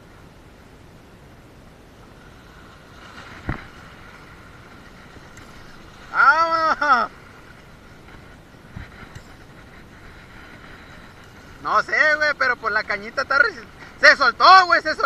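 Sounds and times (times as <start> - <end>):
wind and sea hiss: 0.0 - 15.0
man's drawn-out exclamation: 6.1 - 7.1.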